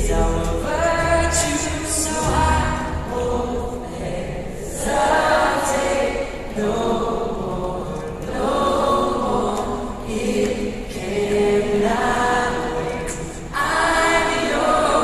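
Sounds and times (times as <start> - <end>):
voices singing in harmony: 0.0 - 15.0.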